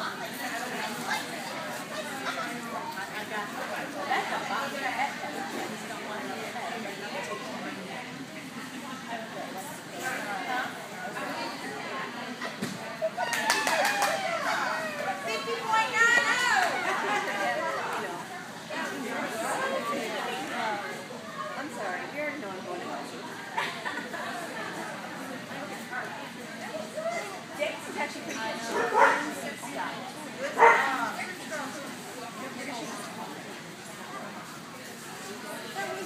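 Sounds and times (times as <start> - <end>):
murmuring voices: 0.0 - 36.0
women talking: 13.0 - 21.0
dog barking: 30.6 - 30.9.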